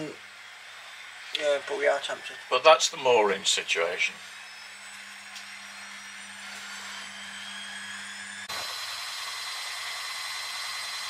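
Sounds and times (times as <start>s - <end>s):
faint high whines: 0.0s - 11.0s.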